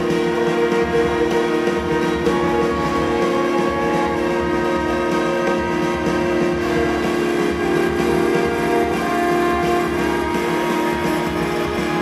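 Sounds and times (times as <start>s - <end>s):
orchestra playing droning chord: 0.0s - 12.0s.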